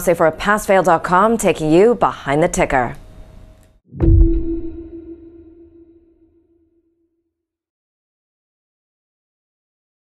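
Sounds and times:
low boom: 3.9s - 6.4s
ringing electronic tone: 4.0s - 6.3s.

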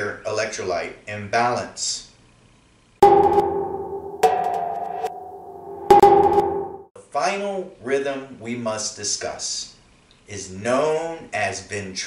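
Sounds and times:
percussive hit with ringing tone: 3.0s - 7.0s.

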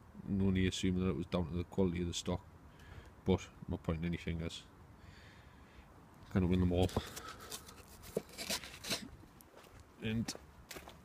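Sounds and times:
camera handling rustles and knocks: 6.8s - 9.1s.

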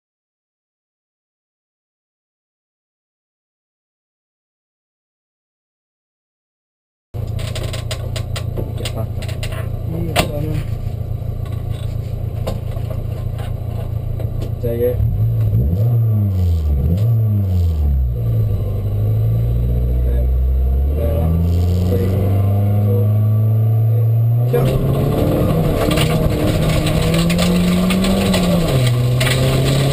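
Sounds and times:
rally car engine revving: 7.2s - 29.9s.

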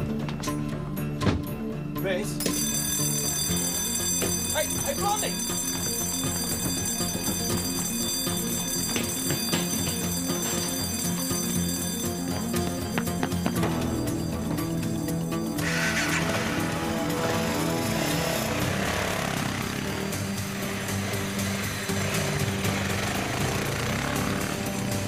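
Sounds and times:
background music with bass line: 0.0s - 25.0s.

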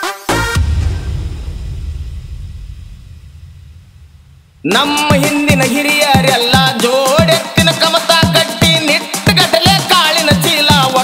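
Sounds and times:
low bass rumble: 0.6s - 4.7s.

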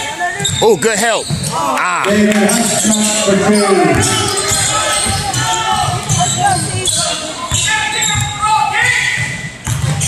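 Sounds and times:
basketball bouncing on hardwood floor: 9.2s - 10.0s.

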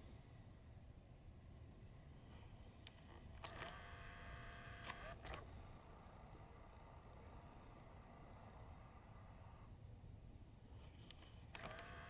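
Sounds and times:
camera clicks: 2.8s - 5.5s, 10.8s - 12.0s
zoom motor whirring: 2.8s - 9.8s, 10.8s - 12.0s.

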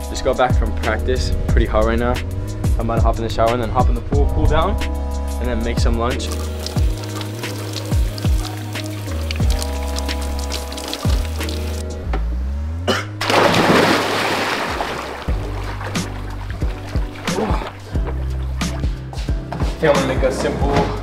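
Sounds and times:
music with heavy bass and drums: 0.0s - 12.4s, 15.2s - 21.0s
person diving into pool splash: 13.2s - 17.9s.

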